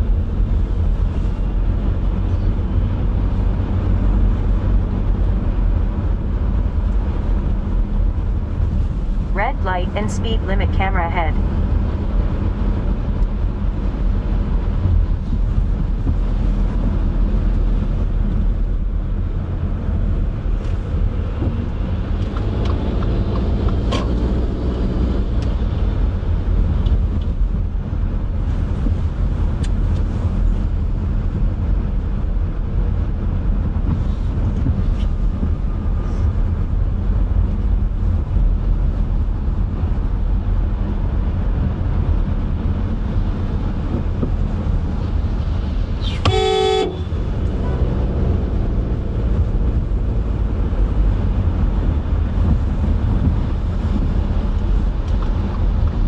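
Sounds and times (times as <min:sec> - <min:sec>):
car engine and tyres rumbling: 0:00.0 - 0:56.0.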